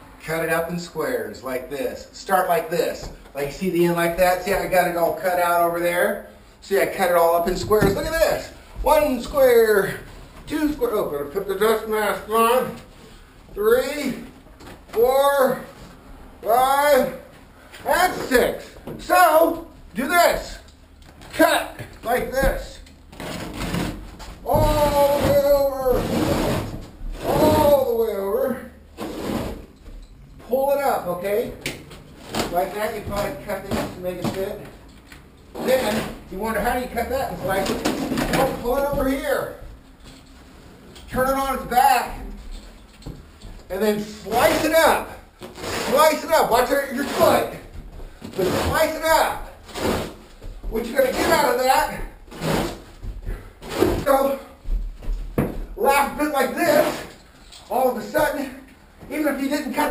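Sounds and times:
man's drawn-out voice: 0:16.4 - 0:20.7, 0:24.4 - 0:28.8.

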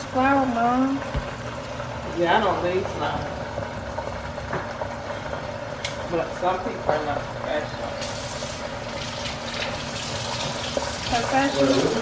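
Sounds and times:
chicken sizzling in hot oil: 0:00.0 - 0:12.0.

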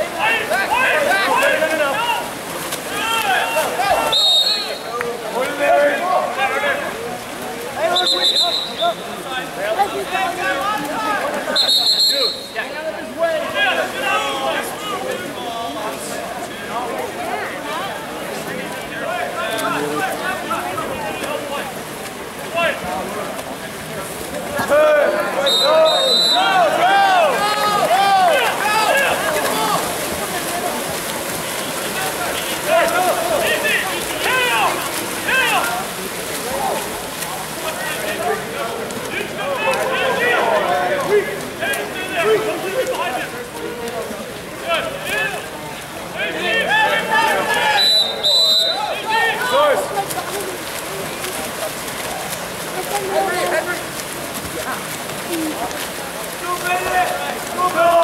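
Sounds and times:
swimmers splashing: 0:00.0 - 0:58.0
shrill whistle: 0:04.1 - 0:04.8, 0:08.0 - 0:09.0, 0:11.6 - 0:12.6, 0:25.5 - 0:26.5, 0:47.7 - 0:48.9
people shouting: 0:24.7 - 0:30.0, 0:32.6 - 0:35.8.

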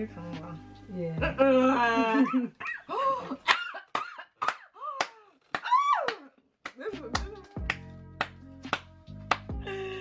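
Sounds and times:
women laughing: 0:01.2 - 0:05.0.

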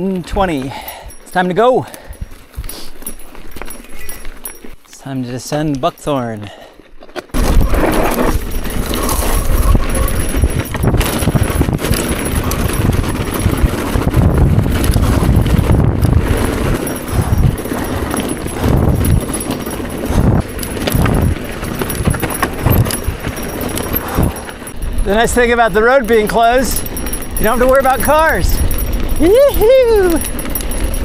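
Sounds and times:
bike rattling over bumps: 0:00.0 - 0:31.0
bike tyres on dirt and rock: 0:00.0 - 0:31.0
wind rumble on microphone: 0:07.3 - 0:31.0.

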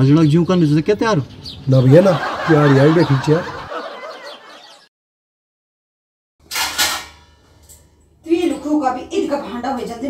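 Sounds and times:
man chuckling: 0:01.9 - 0:04.3.

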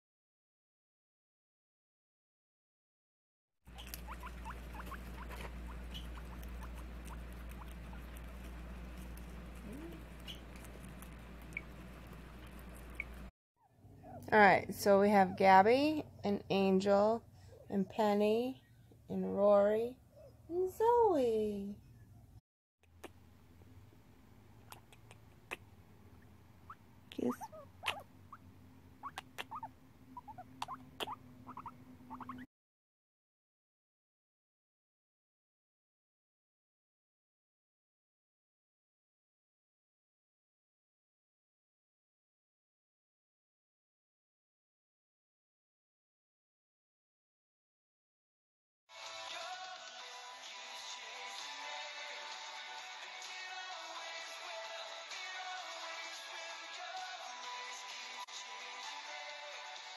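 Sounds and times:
guinea pigs squeaking: 0:03.7 - 0:13.3, 0:26.2 - 0:32.5
steady low hum: 0:03.8 - 0:13.3
kissing smacks: 0:24.6 - 0:25.7, 0:27.1 - 0:28.1, 0:29.0 - 0:29.7, 0:30.3 - 0:32.4.

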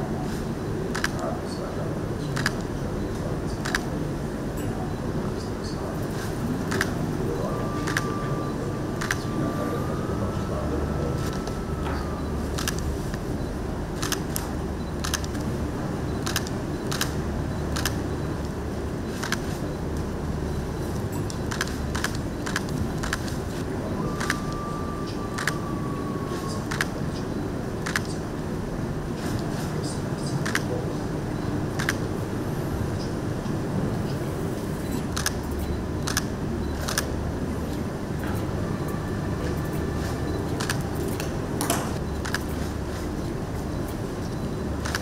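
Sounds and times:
low room rumble: 0:00.0 - 0:45.0.

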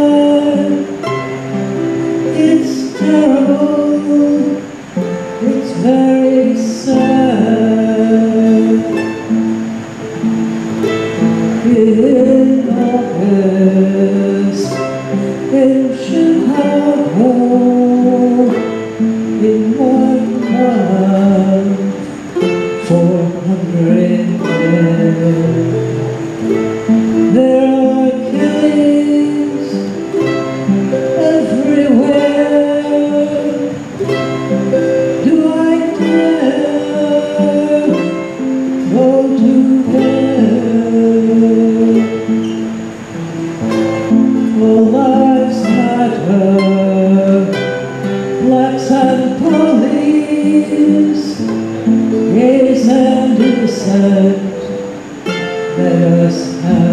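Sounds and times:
mandolin picking melody: 0:00.0 - 0:56.9
strummed acoustic guitar: 0:00.0 - 0:56.9.

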